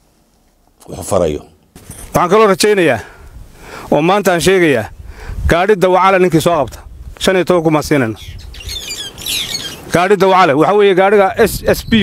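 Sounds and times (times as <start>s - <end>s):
low outdoor hiss: 0.0s - 12.0s
small birds chirping: 6.4s - 12.0s.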